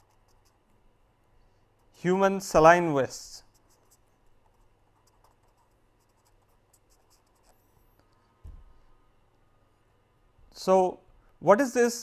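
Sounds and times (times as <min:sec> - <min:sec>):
pen scratching on paper: 0:00.0 - 0:00.6, 0:03.5 - 0:07.7
low thump: 0:08.4 - 0:08.8.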